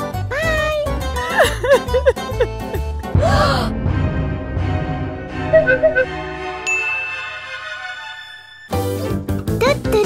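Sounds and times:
sustained background music: 0.0 - 9.9
bright bell-like ding: 6.7 - 7.5.

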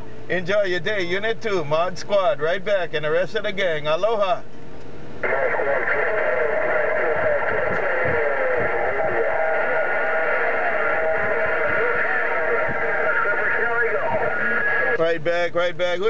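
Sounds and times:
garbled overlapping radio voices: 5.2 - 16.0.

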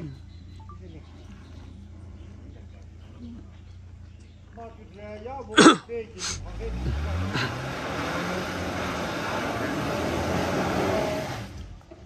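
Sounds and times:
suv engine revving hard: 5.6 - 11.8.

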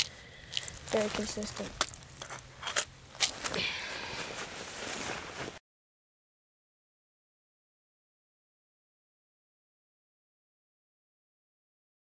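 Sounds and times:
rustling of leaves and clothing: 0.0 - 5.6.

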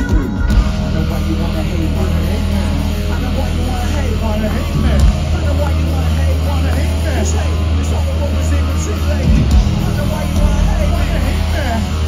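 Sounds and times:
crowd shouting: 0.0 - 12.0
low bass drone: 0.4 - 12.0.

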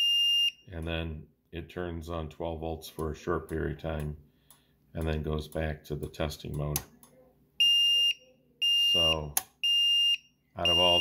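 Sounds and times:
high-pitched beeps: 7.6 - 11.0.

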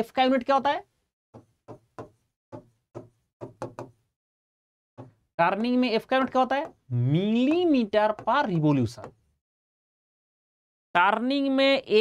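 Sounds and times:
pen tapping on writing board: 1.3 - 4.0, 5.0 - 5.2, 6.2 - 6.8, 8.0 - 9.2.

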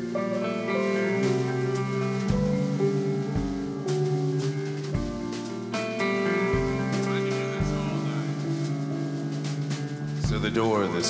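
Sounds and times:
drums and cymbals: 0.0 - 11.0
sustained electric guitar notes: 0.0 - 11.0.

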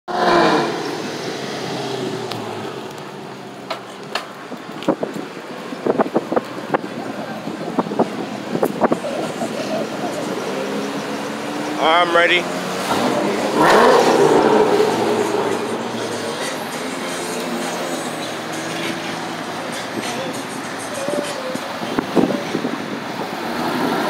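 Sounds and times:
street traffic: 0.1 - 24.0.

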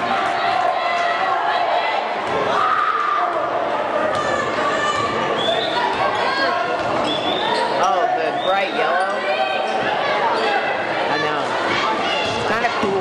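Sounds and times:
crowd talking: 0.0 - 13.0.

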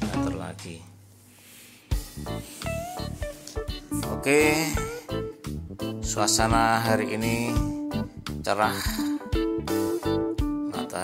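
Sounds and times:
sliding melody background music: 0.0 - 0.8, 1.4 - 11.0.

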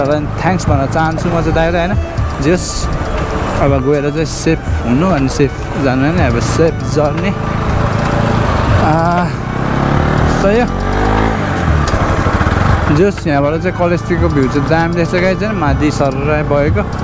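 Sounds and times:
person's voice: 0.0 - 2.9, 3.6 - 7.4, 8.7 - 9.4, 10.2 - 10.8, 12.8 - 17.0
motorcycle engine running: 0.0 - 17.0
road and wind noise: 0.0 - 17.0.

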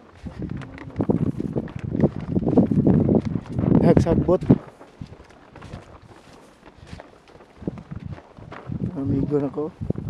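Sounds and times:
soft footsteps on grass: 0.0 - 10.0.

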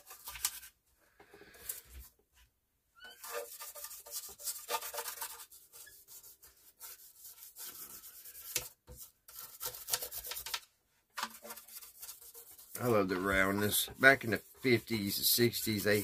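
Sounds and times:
hand scrubbing radio cabinet: 11.2 - 16.0.

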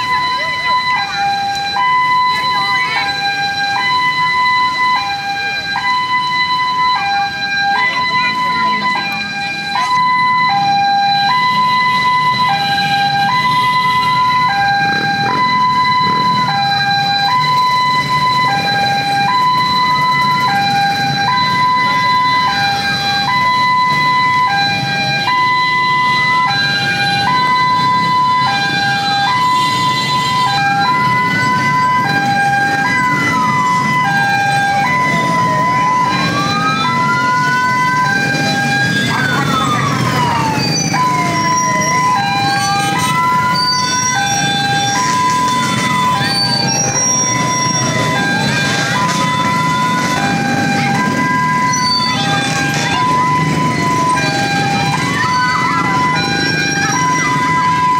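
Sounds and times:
motorbike engines running: 0.0 - 57.9
two-tone hi-lo siren: 0.0 - 57.9
wailing siren: 0.0 - 57.9.

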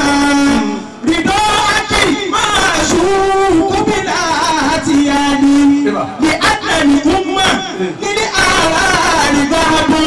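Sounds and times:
man chanting through microphone: 0.0 - 10.0
group of voices singing: 6.2 - 10.0.

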